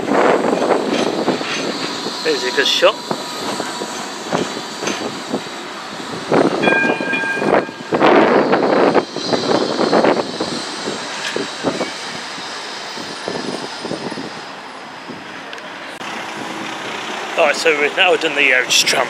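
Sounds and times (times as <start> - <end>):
tram running past: 0.0 - 19.0
wheels on rails: 0.0 - 19.0
tram warning horn: 6.6 - 9.7.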